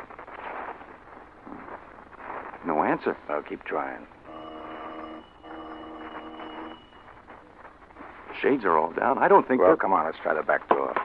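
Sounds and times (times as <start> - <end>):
doorbell ringing: 4.3 - 7.1.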